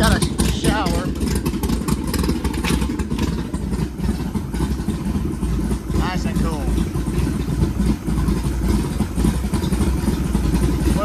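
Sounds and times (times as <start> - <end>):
boat engine idling: 0.0 - 11.0.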